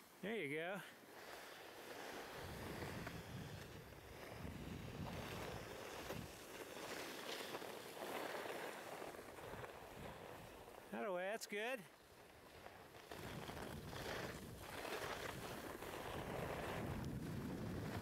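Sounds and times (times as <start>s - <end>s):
skis sliding over packed snow: 0.0s - 18.0s
wind rushing across microphone: 2.4s - 6.4s, 13.2s - 18.0s.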